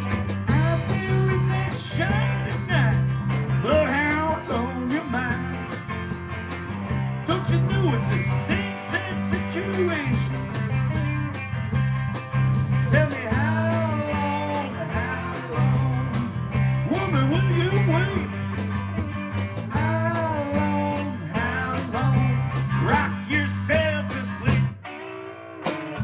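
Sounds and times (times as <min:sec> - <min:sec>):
steady drum beat: 0:00.0 - 0:24.8
bass line: 0:00.0 - 0:24.9
lead electric guitar bending notes: 0:00.0 - 0:26.0.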